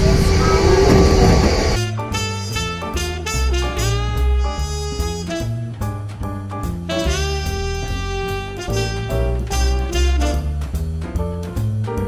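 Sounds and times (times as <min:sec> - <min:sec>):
ride train rumble: 0:00.0 - 0:01.9
constant hum: 0:00.0 - 0:11.9
instrumental music: 0:01.8 - 0:12.0.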